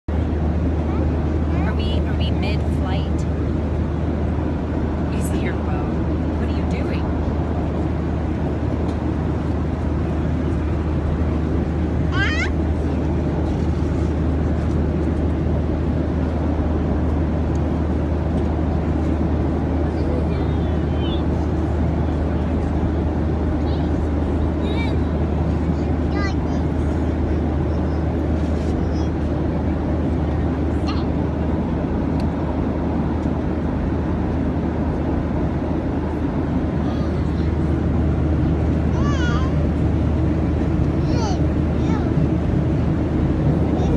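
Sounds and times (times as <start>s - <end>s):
airliner cabin engine drone: 0.1s - 43.9s.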